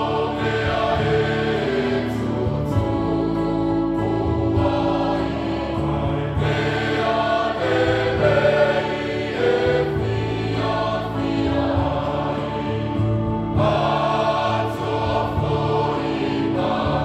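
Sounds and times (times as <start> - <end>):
church choir singing a hymn: 0.0 - 17.0.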